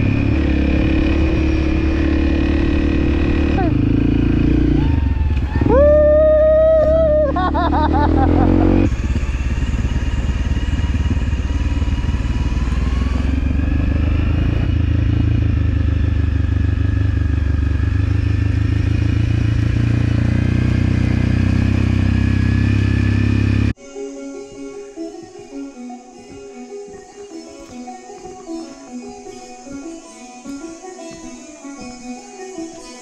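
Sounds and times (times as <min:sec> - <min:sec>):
motorcycle engine running: 0:00.0 - 0:23.8.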